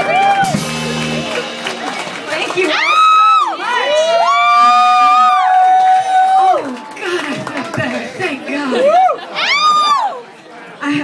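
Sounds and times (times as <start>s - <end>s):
audience cheering: 0.0s - 7.1s, 8.7s - 10.3s
high-pitched whoops: 2.7s - 6.7s.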